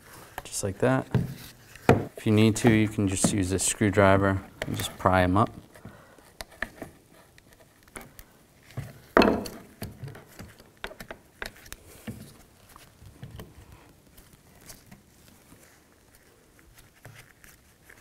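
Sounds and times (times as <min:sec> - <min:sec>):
small clicks taps and rubbing: 0:00.3 - 0:18.0.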